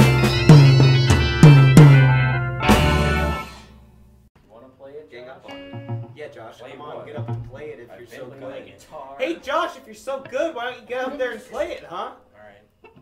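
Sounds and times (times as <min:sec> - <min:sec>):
strummed guitar chords: 0:00.0 - 0:03.8, 0:05.5 - 0:06.2, 0:07.0 - 0:07.7
drums: 0:00.0 - 0:03.9.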